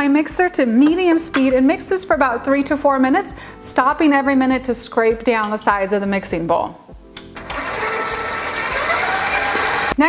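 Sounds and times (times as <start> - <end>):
stand mixer motor running: 7.4 - 10.0.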